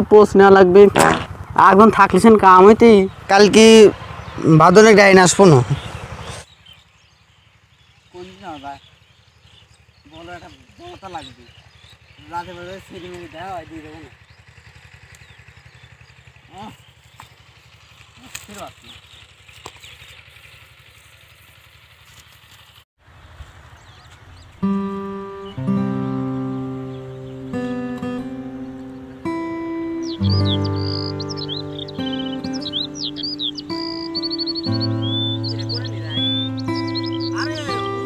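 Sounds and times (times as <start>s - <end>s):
small engine droning: 0.0s - 38.0s
high bird chirps: 5.2s - 20.6s, 23.7s - 38.0s
instrumental background music: 24.6s - 38.0s.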